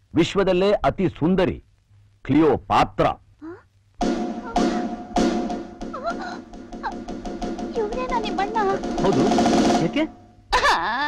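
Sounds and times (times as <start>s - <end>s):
background music with tapping rhythm: 4.0s - 10.3s
person speaking: 7.7s - 10.2s.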